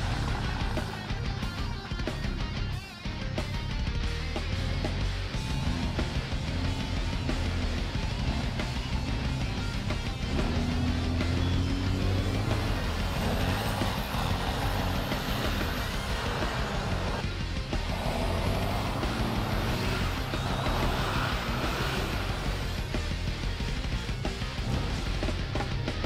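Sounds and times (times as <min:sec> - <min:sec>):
armored car engine running: 0:00.0 - 0:26.0
background music: 0:00.0 - 0:26.0.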